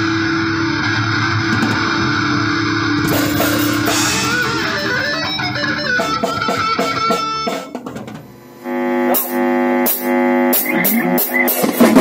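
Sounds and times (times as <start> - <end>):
band playing: 1.3 - 7.9, 9.1 - 12.0
held chord: 2.9 - 6.5.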